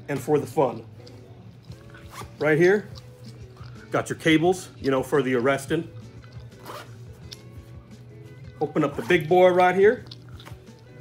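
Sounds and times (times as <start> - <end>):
faint background music: 0.0 - 11.0
zipper pulled open: 2.0 - 2.4, 6.4 - 7.1.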